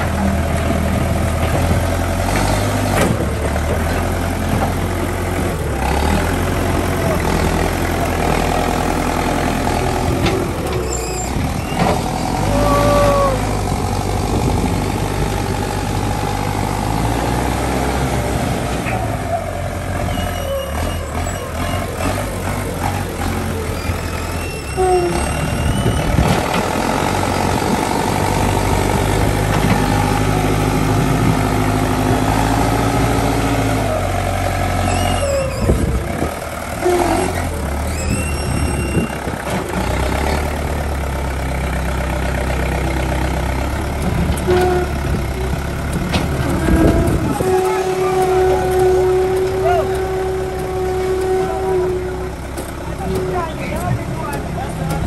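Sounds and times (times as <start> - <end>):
diesel engine running under load: 0.0 - 55.0.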